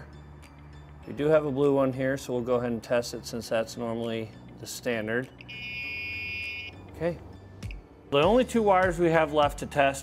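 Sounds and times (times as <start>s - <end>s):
high-pitched tester beep: 5.4s - 6.8s.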